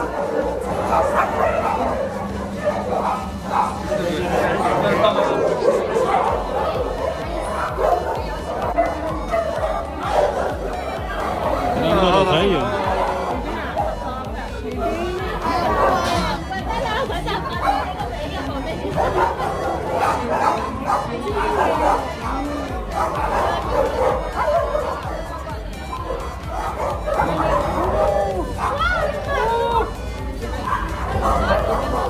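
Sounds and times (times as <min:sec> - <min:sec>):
background music: 0:00.0 - 0:32.0
dogs barking: 0:00.0 - 0:32.0
people chatting: 0:00.0 - 0:32.0.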